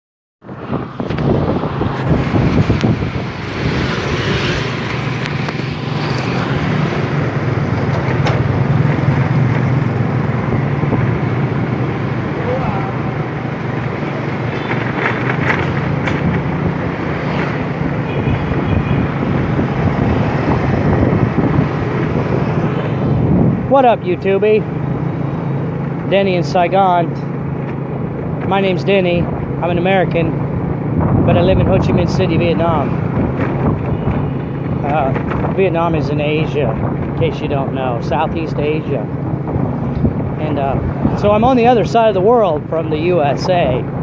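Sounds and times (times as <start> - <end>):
surrounding traffic: 0.4 - 44.0
wind noise on microphone: 0.4 - 44.0
scooter engine humming: 0.6 - 32.0.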